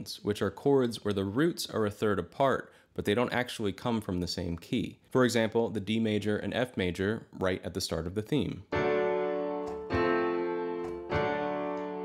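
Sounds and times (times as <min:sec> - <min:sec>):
piano chords: 0:08.7 - 0:12.0.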